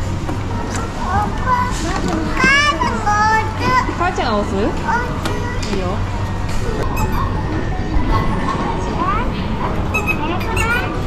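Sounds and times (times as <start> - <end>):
young child talking and calling out: 9.9 - 11.0.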